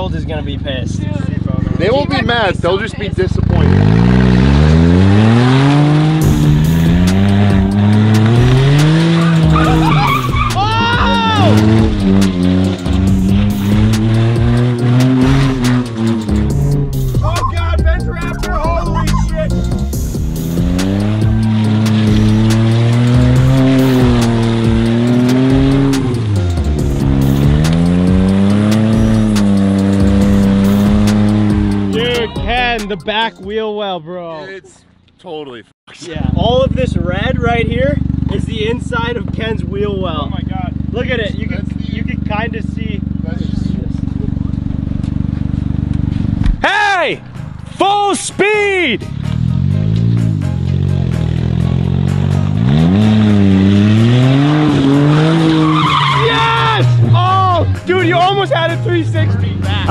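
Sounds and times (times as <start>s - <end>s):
car engine revving: 0.0s - 33.3s, 36.1s - 59.9s
person shrieking: 9.6s - 11.6s, 55.8s - 56.9s.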